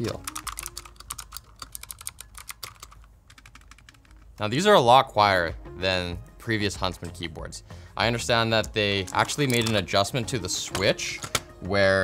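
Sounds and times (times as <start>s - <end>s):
fast keyboard typing: 0.0s - 4.4s, 8.7s - 9.9s.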